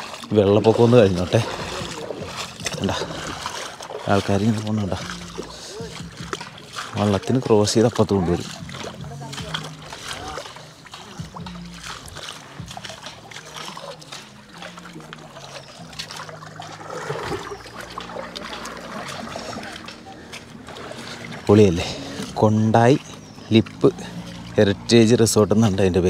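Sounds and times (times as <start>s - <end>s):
paddle strokes splashing: 0.0s - 26.0s
faint voices: 0.1s - 26.0s.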